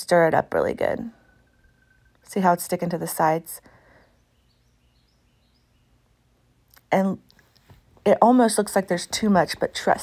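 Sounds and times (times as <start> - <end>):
faint high chirps: 1.1 - 2.4, 3.8 - 6.1.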